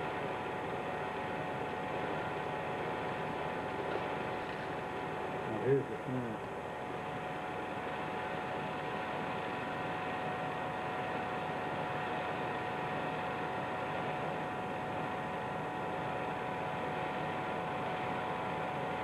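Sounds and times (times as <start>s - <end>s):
thin steady whine: 0.0s - 19.0s.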